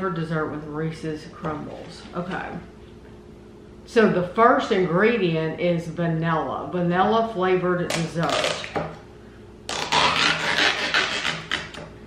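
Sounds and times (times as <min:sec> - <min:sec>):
peel-off seal tearing: 0:09.7 - 0:11.8.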